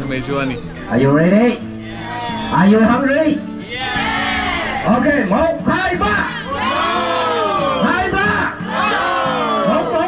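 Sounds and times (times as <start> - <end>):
group cheering and shouting: 1.7 - 10.0.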